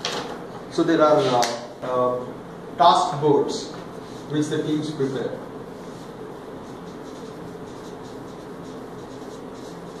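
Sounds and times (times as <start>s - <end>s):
marker scratching on whiteboard: 5.8s - 10.0s.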